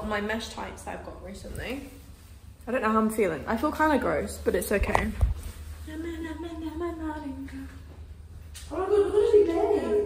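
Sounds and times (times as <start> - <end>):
woman singing wordlessly: 5.8 - 8.0.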